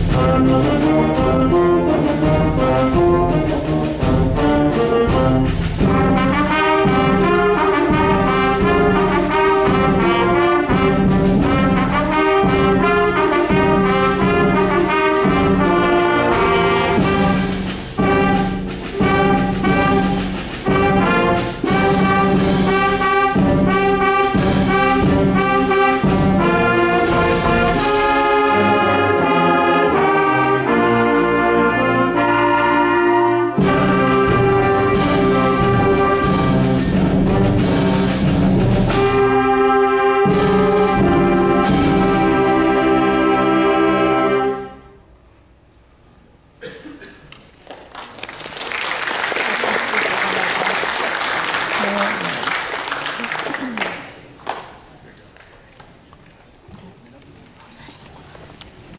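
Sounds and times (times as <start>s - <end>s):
percussion beat: 0.0s - 28.7s, 32.0s - 42.7s
concert band playing: 0.0s - 44.9s.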